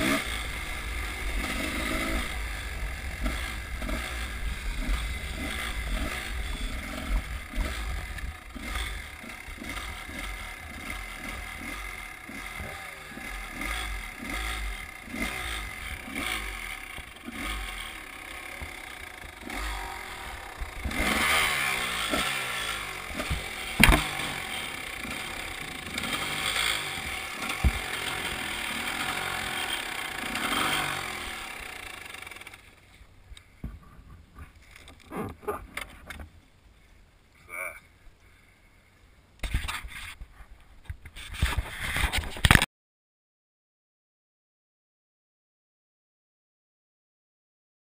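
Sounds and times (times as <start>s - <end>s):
dirt bike engine revving: 0.0s - 32.8s.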